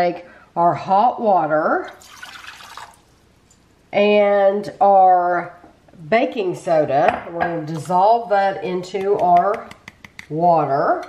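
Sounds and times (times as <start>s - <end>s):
water pouring into ceramic bowl: 1.9s - 3.1s.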